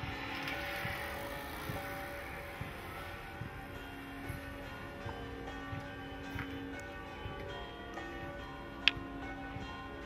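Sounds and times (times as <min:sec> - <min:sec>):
church bells ringing: 0:00.0 - 0:10.0
people walking: 0:00.0 - 0:10.0.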